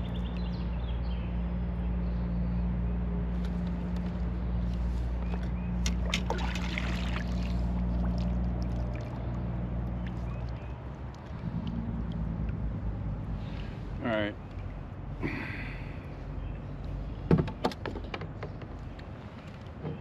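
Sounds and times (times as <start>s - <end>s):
distant traffic engine drone: 0.0s - 20.0s
light water noise: 3.3s - 17.2s.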